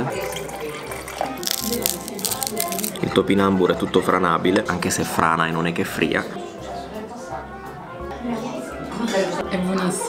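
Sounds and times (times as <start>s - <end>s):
background music: 0.0s - 10.0s
crisp chips crackling: 1.4s - 3.0s.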